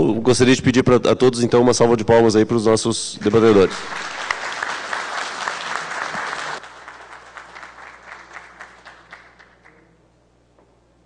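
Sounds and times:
audience applauding: 3.2s - 9.9s.

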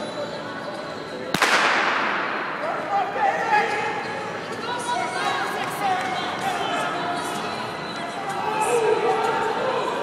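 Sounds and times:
starting pistol crack echoing: 1.4s - 2.6s.

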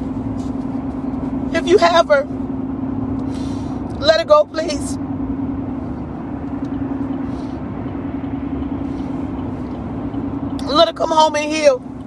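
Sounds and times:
car road and engine noise: 0.0s - 12.0s
constant low hum: 0.0s - 12.0s.

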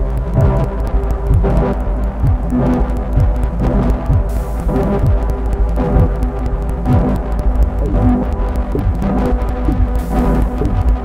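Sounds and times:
deep synthesizer drone: 0.0s - 11.0s.

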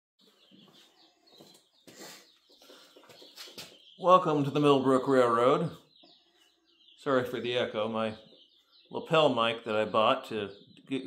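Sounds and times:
faint bird chirps: 0.2s - 11.0s.

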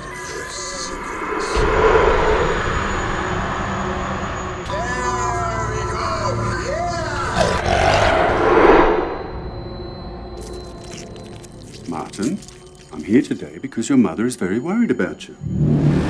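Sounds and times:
swelling noise: 0.0s - 11.2s
low rumbling drone: 0.0s - 13.0s.

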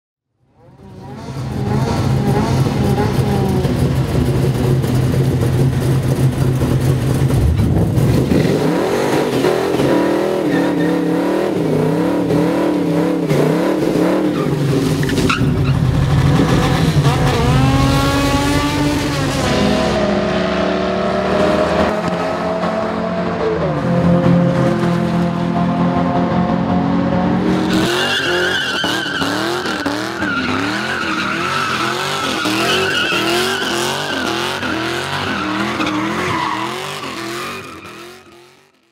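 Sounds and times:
car engine revving: 0.7s - 38.8s
tyre squeal: 27.7s - 38.4s.

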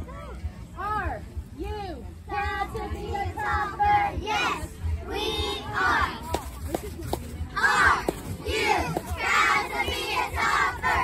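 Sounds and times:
girls chanting a cheer: 2.3s - 6.3s, 7.6s - 11.0s.

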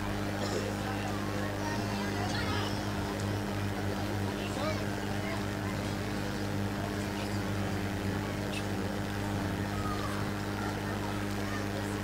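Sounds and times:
electrical hum: 0.0s - 12.0s
faint voices murmuring: 0.0s - 12.0s.

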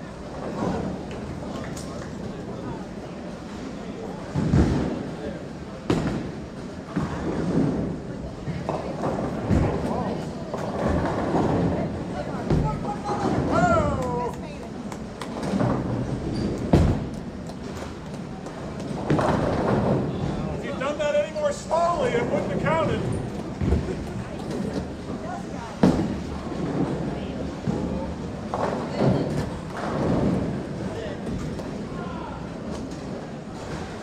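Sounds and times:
murmur of voices: 0.0s - 34.0s
bowling balls thudding: 14.8s - 20.6s, 22.2s - 31.9s.

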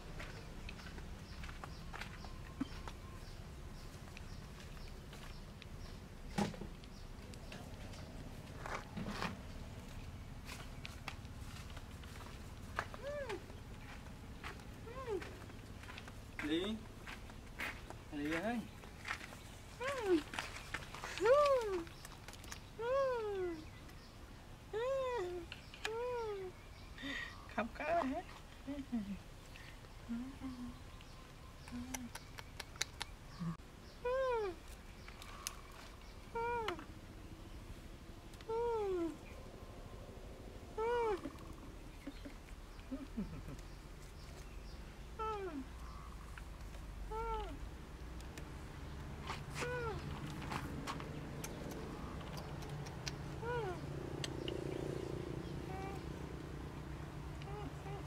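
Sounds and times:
baby macaque coo cries: 40.8s - 41.6s.

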